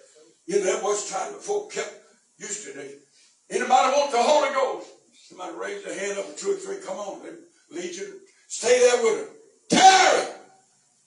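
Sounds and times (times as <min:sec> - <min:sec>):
man shouting into microphone: 0:08.6 - 0:10.5.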